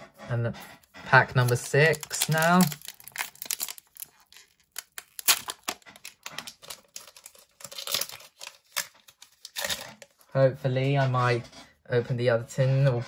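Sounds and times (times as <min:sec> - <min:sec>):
foil wrapper tearing and crinkling: 0:01.4 - 0:10.2.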